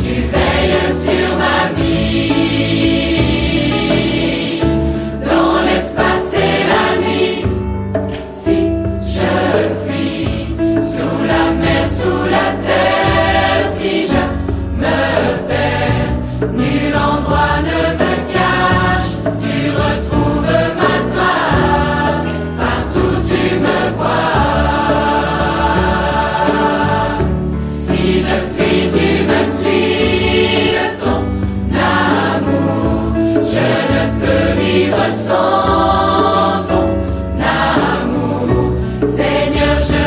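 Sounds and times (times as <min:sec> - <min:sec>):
instrumental accompaniment: 0:00.0 - 0:40.0
people singing worship song: 0:00.0 - 0:40.0.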